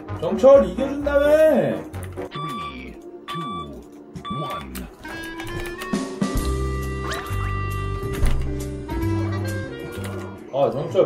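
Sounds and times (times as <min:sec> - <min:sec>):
background music: 0:00.0 - 0:11.0
electronic door beeps: 0:02.2 - 0:06.0.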